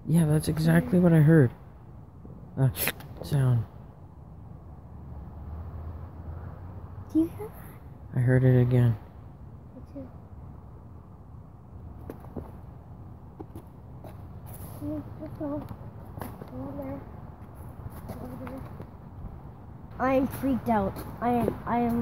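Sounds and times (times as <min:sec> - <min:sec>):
child's quiet voice: 0:07.1 - 0:07.8, 0:09.7 - 0:10.2, 0:14.7 - 0:15.7, 0:16.4 - 0:17.1, 0:18.0 - 0:18.8, 0:20.0 - 0:22.0.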